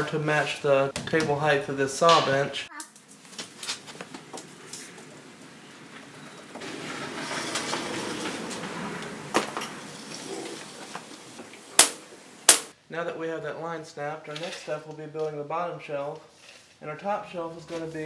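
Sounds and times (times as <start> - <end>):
line rustling: 2.9 - 12.7.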